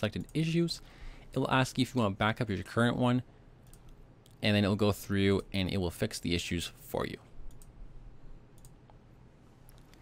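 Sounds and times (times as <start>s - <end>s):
low background hum: 0.0s - 10.0s
computer mouse clicks: 3.6s - 4.4s, 7.5s - 7.8s, 8.5s - 9.0s.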